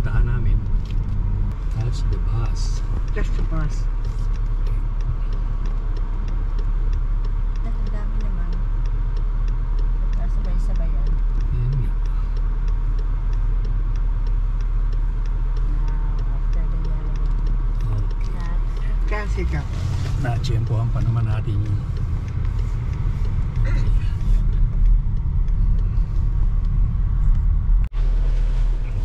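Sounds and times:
car driving rumble from inside: 0:00.0 - 0:29.0.

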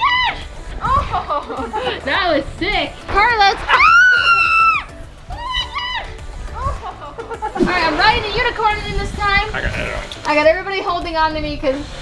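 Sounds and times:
background music: 0:00.0 - 0:12.0
high-pitched scream: 0:03.7 - 0:06.2.

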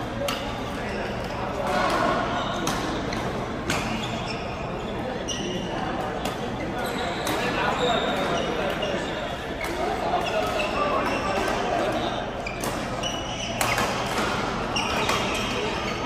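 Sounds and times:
voices chattering: 0:00.0 - 0:16.0
shoes squeaking on court floor: 0:00.1 - 0:16.0.

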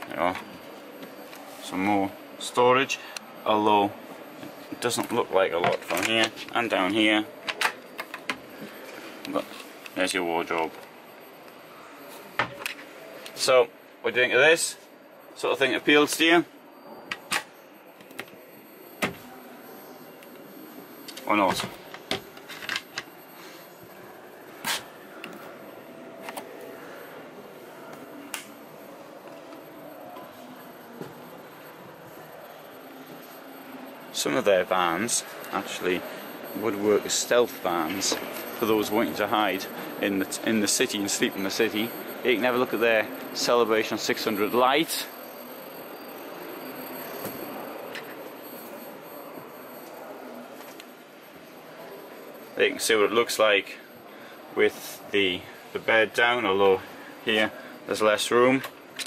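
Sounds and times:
exhibition hall hubbub: 0:00.0 - 0:59.0.

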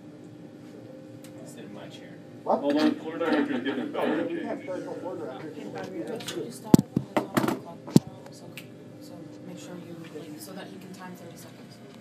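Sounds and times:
phone knocking on desk: 0:06.8 - 0:07.6.

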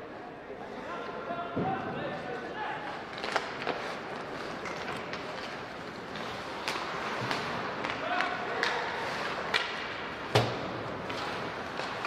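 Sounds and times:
rink background noise: 0:00.0 - 0:12.0.

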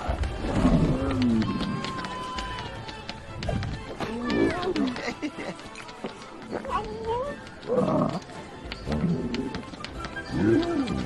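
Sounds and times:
soundtrack music: 0:00.0 - 0:11.0.

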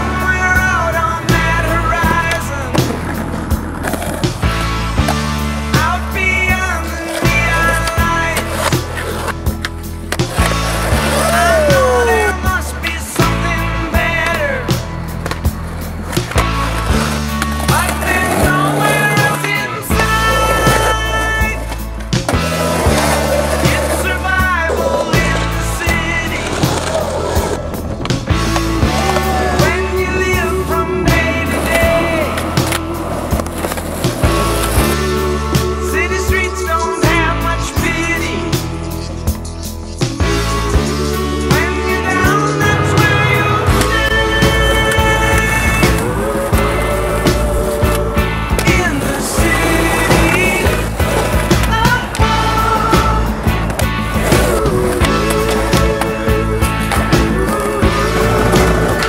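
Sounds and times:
background music with beat: 0:00.0 - 0:59.0
skateboard rolling on concrete: 0:00.0 - 0:59.0
gliding melody line: 0:41.0 - 0:48.3.

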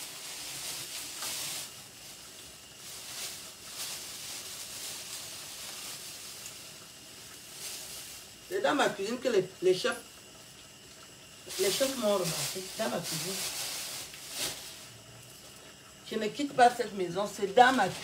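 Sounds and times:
food sizzling in a pan: 0:00.0 - 0:18.0.

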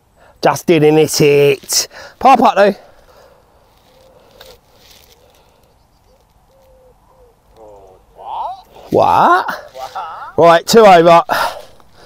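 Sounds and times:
faint low bird calls: 0:02.9 - 0:10.4
man's voice: 0:07.6 - 0:11.7.

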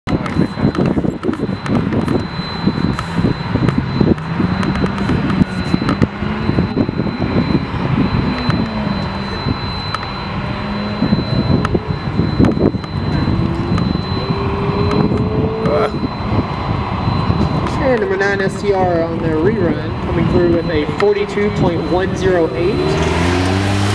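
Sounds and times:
car engine working hard: 0:00.0 - 0:23.9.

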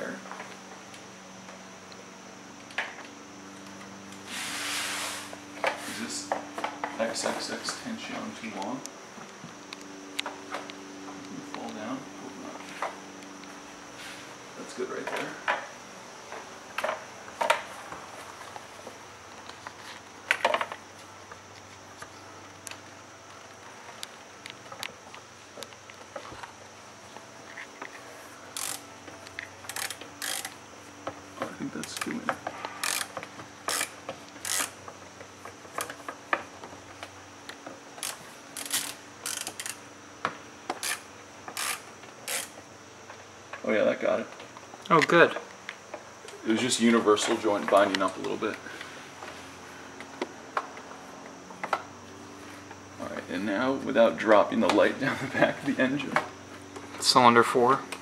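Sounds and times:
ratchet clicking: 0:28.5 - 0:28.8, 0:29.6 - 0:30.6, 0:32.8 - 0:34.8, 0:38.0 - 0:39.8, 0:40.7 - 0:42.6.

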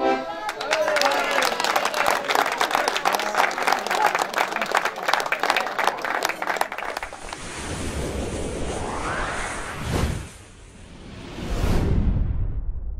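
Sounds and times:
crowd applauding: 0:00.2 - 0:07.5
whoosh sound effect: 0:07.2 - 0:12.2.

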